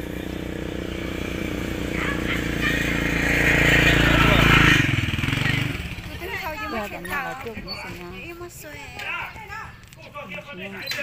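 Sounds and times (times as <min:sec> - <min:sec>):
vehicle engine running: 0:00.0 - 0:08.3.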